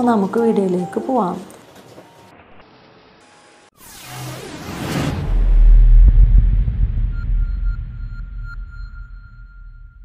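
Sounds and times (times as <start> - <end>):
deep rumble: 4.7 - 10.0
high sonar-like tone: 6.8 - 10.0.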